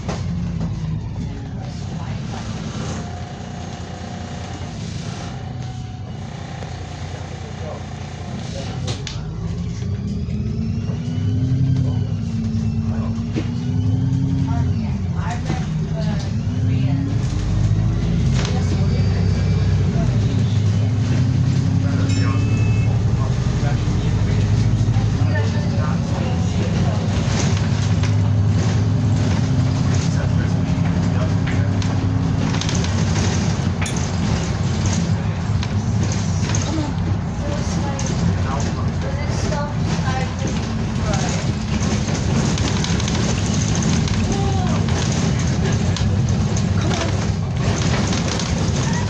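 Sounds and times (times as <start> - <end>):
bus diesel engine accelerating: 0.0 - 49.0.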